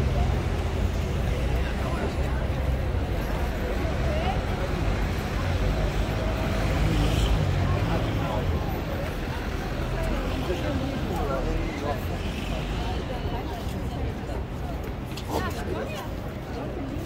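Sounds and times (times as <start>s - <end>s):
people talking: 0.0s - 17.0s
road traffic passing: 0.0s - 17.0s.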